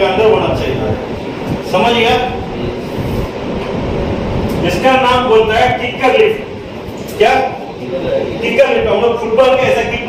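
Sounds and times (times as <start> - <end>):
man speaking: 4.6 - 10.0.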